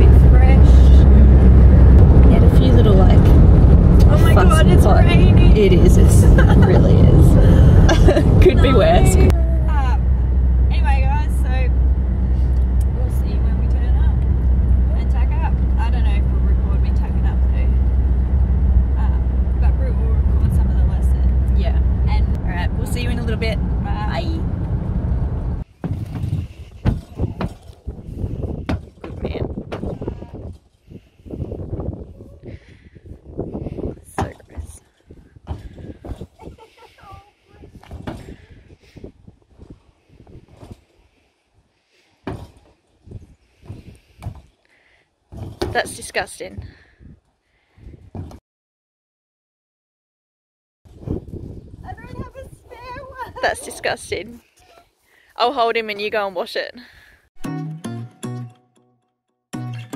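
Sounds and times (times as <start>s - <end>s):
people chatting: 0.0s - 1.3s, 2.2s - 3.3s, 4.0s - 10.1s, 10.7s - 11.7s, 12.8s - 14.2s, 14.9s - 17.8s, 19.0s - 24.4s, 29.2s - 29.4s, 45.7s - 46.6s, 51.8s - 54.4s, 55.4s - 56.8s
car cabin road and engine drone: 0.0s - 27.4s.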